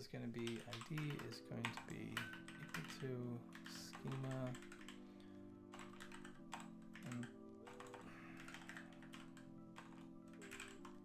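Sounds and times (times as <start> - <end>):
chillhop background music: 0.0 - 11.0
keyboard typing: 0.4 - 5.0, 5.6 - 11.0.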